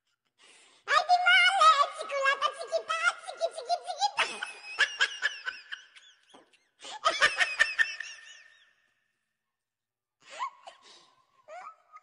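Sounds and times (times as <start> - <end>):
child laughing: 2.8 - 8.5, 11.5 - 12.0.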